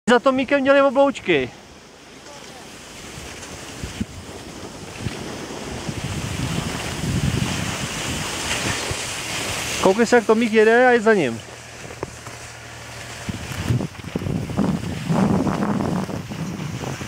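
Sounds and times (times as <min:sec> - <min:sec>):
wind rushing over microphone: 0:01.2 - 0:17.0.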